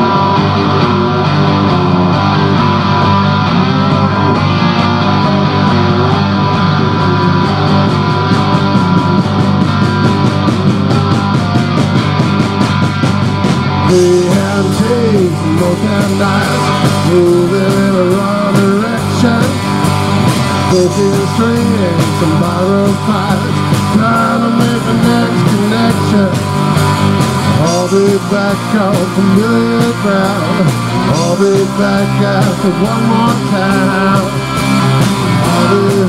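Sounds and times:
drum kit: 0:00.0 - 0:36.0
electric guitars: 0:00.0 - 0:36.0.

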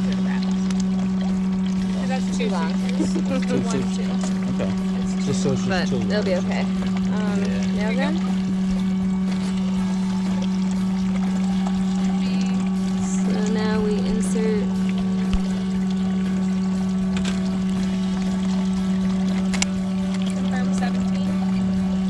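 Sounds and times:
small water pump humming: 0:00.0 - 0:22.0.

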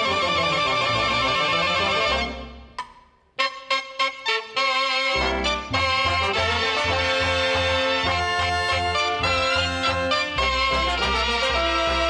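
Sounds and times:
brass playing: 0:00.0 - 0:02.7, 0:03.4 - 0:12.0
double-reed melody: 0:00.0 - 0:02.7, 0:03.4 - 0:12.0.

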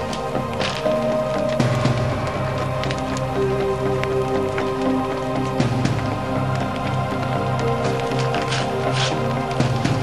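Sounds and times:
background music with held notes: 0:00.0 - 0:10.0
paper burning crackling: 0:00.0 - 0:10.0.

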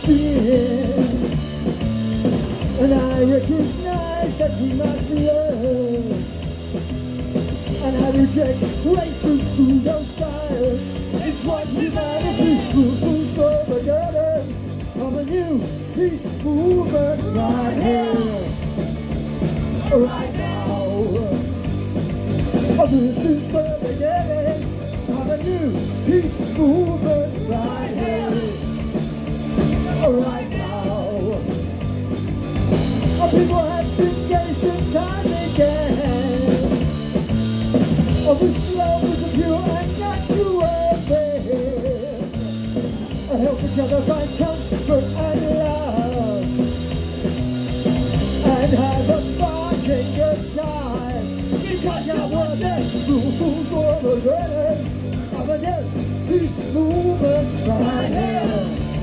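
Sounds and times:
man singing: 0:00.0 - 0:01.5, 0:02.6 - 0:06.4, 0:07.6 - 0:18.8, 0:19.6 - 0:21.7, 0:22.5 - 0:29.0, 0:29.6 - 0:31.7, 0:33.0 - 0:36.9, 0:38.1 - 0:46.7, 0:48.2 - 0:59.0
punk rock band playing: 0:00.0 - 0:59.0.

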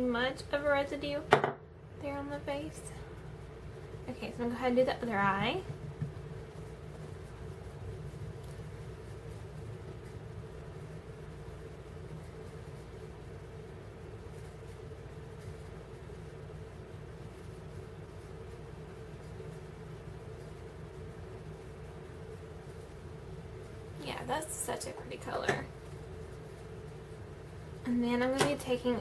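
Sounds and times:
faint constant tone: 0:00.0 - 0:29.0
low background hum: 0:00.0 - 0:29.0.

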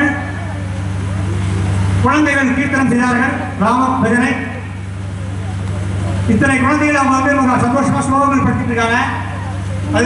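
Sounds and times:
steady low hum: 0:00.0 - 0:10.0
man narrating: 0:02.0 - 0:04.6, 0:06.3 - 0:09.2.

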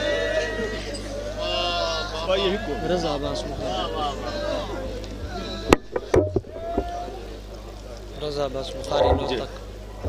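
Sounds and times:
faint voices: 0:00.0 - 0:10.0
steady low hum: 0:03.1 - 0:10.0
sharp knocks: 0:05.8 - 0:06.8.

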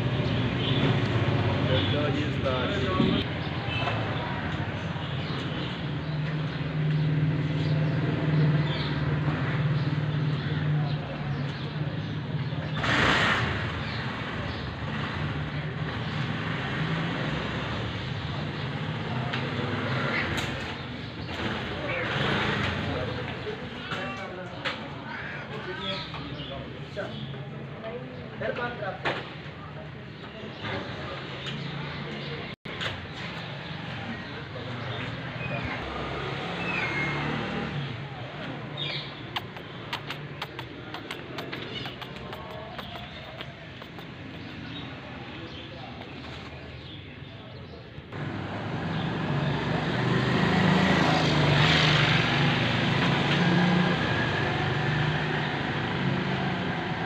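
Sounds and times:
voices: 0:00.0 - 0:12.9, 0:18.2 - 0:48.2
sharp clicks: 0:39.3 - 0:44.8.

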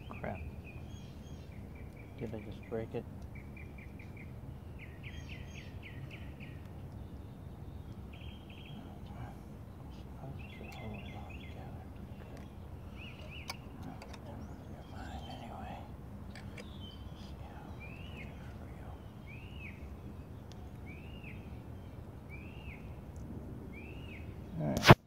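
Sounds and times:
bird chirping: 0:00.0 - 0:24.8
steady background noise: 0:00.0 - 0:25.0.

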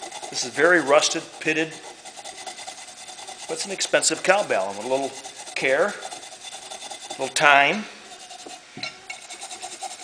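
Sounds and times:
abrasive pad scrubbing metal: 0:00.0 - 0:10.0.

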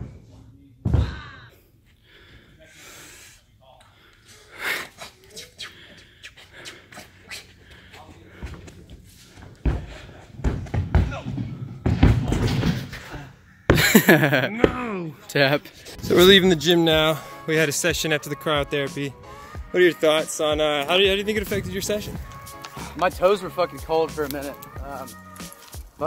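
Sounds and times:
breathing: 0:01.9 - 0:05.0, 0:05.6 - 0:10.4, 0:19.2 - 0:19.6, 0:22.7 - 0:23.0
thuds on sprung gym floor: 0:09.6 - 0:12.9.

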